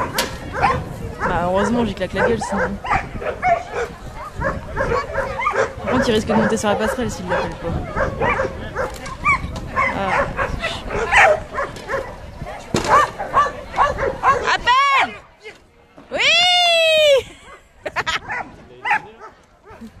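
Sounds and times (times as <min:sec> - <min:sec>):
dog barking: 0:00.5 - 0:15.2, 0:18.2 - 0:19.9.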